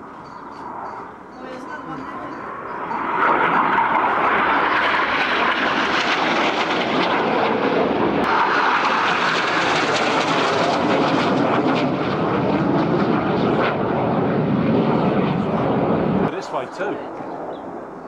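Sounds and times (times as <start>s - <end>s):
jet passing low overhead: 0.0s - 18.0s.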